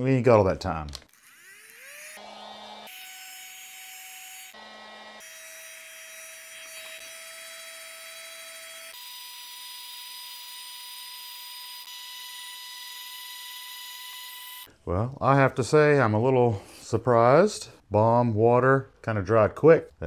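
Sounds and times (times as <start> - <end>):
heat gun fan whine: 1.8 - 3.0, 4.5 - 5.4.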